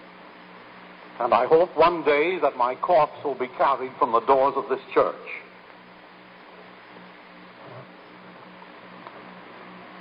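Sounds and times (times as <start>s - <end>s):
low pulsing hum: 0.0s - 10.0s
tape hiss: 0.0s - 10.0s.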